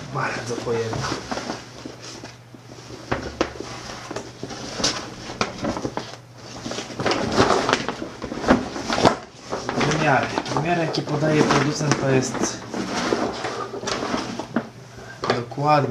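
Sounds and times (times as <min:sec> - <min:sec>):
coated nylon bag rustling: 0:00.0 - 0:14.6.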